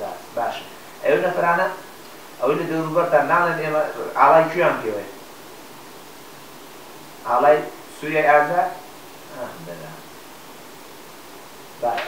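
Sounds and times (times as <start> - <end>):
man speaking: 0.0 - 5.2, 7.2 - 10.1, 11.8 - 12.0
steady background hiss: 0.0 - 12.0.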